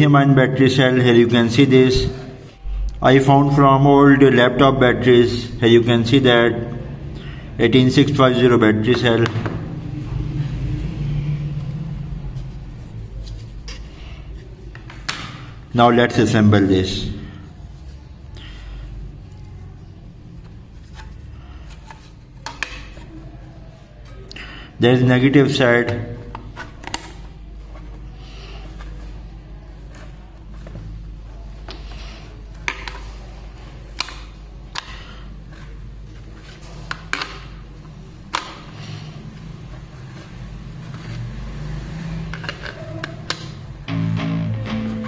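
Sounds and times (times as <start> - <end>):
low steady hum: 1.4 - 14.8.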